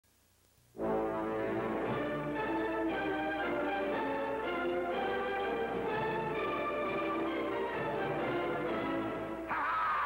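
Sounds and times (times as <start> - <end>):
orchestral theme music: 0.8 - 9.5.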